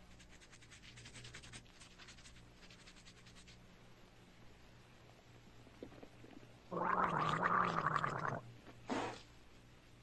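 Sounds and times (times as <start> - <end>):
toothbrush scrubbing teeth: 0.0 - 3.6.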